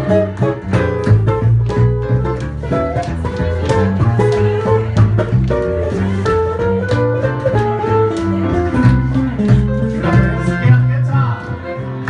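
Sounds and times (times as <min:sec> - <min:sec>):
double bass: 0:00.0 - 0:12.0
electric guitar rhythm: 0:00.0 - 0:12.0.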